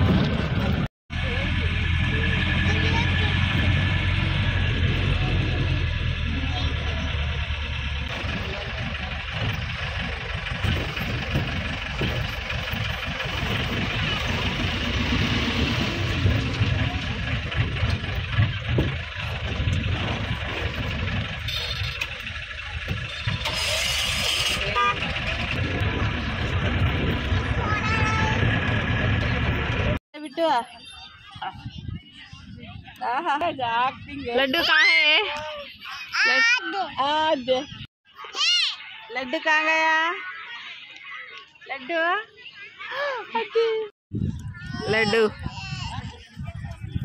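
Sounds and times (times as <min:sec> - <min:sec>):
vehicle engine hum: 0:00.0 - 0:30.0
road rumble: 0:00.0 - 0:47.0
car horns: 0:23.4 - 0:25.5.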